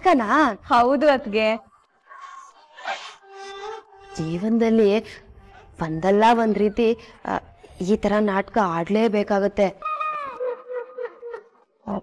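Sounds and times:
soft background drama music: 0.0s - 11.6s.

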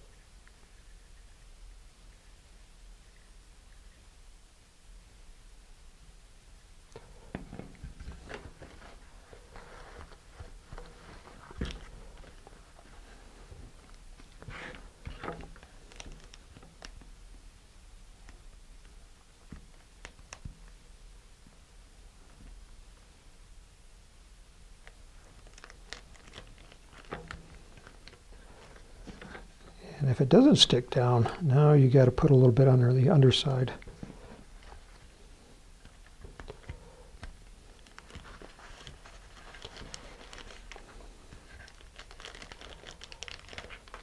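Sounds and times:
paper towel rustle: 7.8s - 16.4s, 37.7s - 44.0s
plastic bag crinkling: 8.1s - 16.9s, 25.3s - 29.8s, 37.7s - 44.0s.

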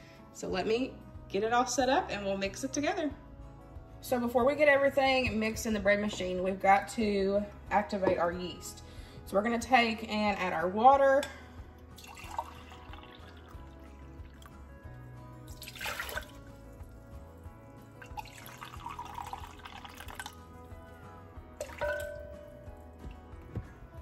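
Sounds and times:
soft background music: 0.0s - 24.0s
water trickling into a cup: 12.0s - 14.6s, 15.5s - 16.9s, 18.0s - 20.5s, 21.6s - 22.3s
glass clink: 21.6s - 22.7s.

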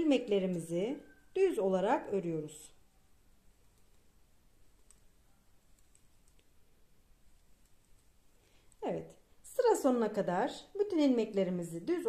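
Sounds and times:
knitting needles clicking: 3.5s - 6.7s, 7.3s - 8.8s.

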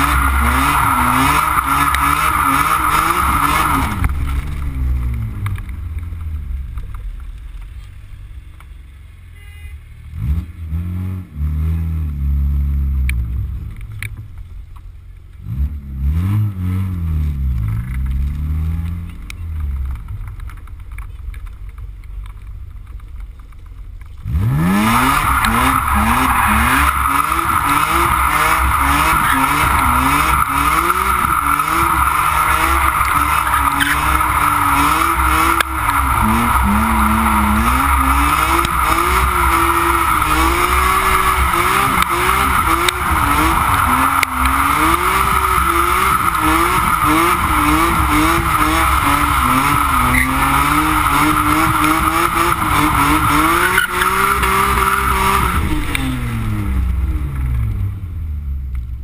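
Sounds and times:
car engine revving hard: 0.0s - 5.1s, 15.4s - 17.5s, 24.2s - 57.8s
tyres squealing: 25.0s - 55.8s.

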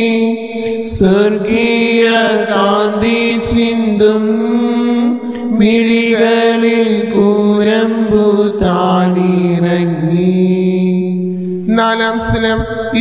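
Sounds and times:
person singing devotional hymn: 0.0s - 13.0s.

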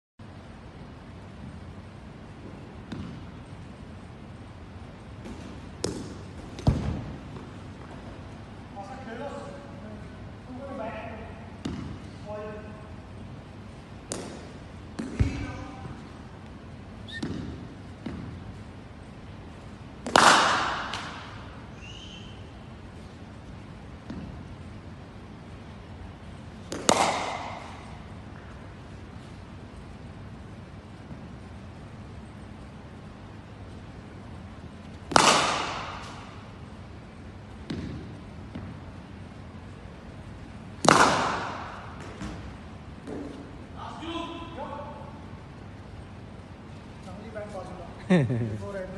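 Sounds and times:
cricket bat hitting ball: 5.2s - 7.5s, 20.0s - 21.5s, 26.7s - 28.0s, 35.0s - 36.5s, 40.8s - 43.4s.

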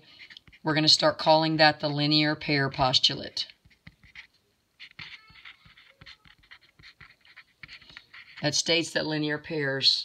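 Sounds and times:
marker scratching on paper: 0.0s - 1.6s, 2.4s - 9.0s.

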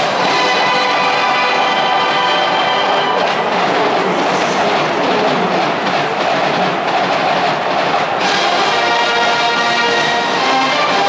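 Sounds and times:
stadium crowd roar: 0.0s - 11.0s.

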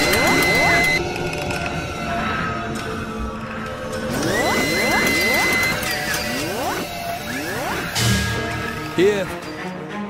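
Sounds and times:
steady high tone: 0.0s - 1.0s, 4.1s - 8.0s
rising pitch sweeps: 4.1s - 8.0s.

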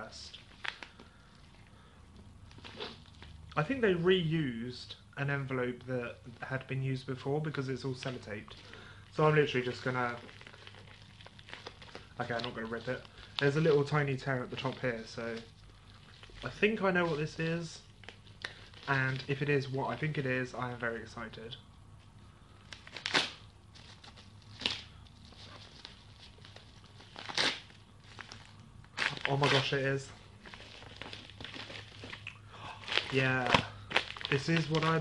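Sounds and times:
envelope and tape crackling: 0.0s - 3.5s, 6.4s - 20.1s, 22.6s - 35.0s.

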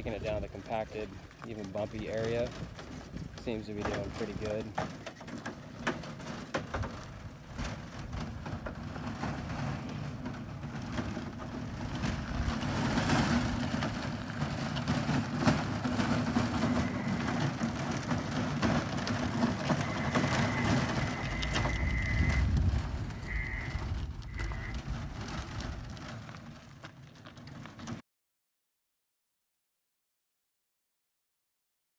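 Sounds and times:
tyres crunching over gravel: 0.0s - 28.0s
power unit drive humming: 9.8s - 25.6s.

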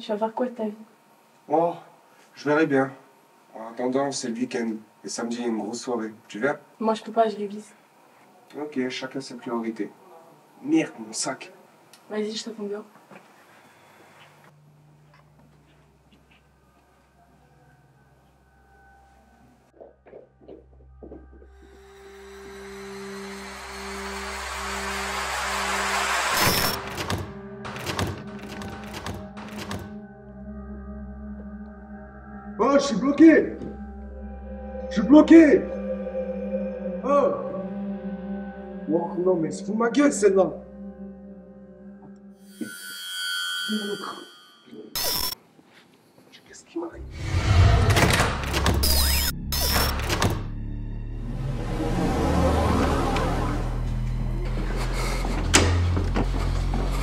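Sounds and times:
drone of high tones: 21.6s - 26.9s, 40.8s - 45.4s
rising noise: 21.7s - 27.0s, 47.0s - 50.3s.

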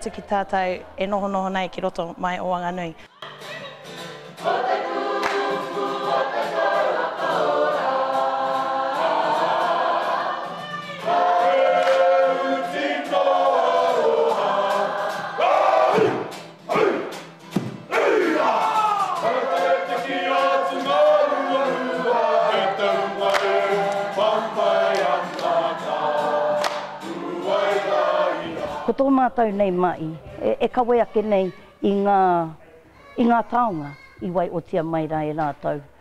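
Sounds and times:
group of men and women singing: 4.4s - 17.2s, 17.9s - 29.0s.

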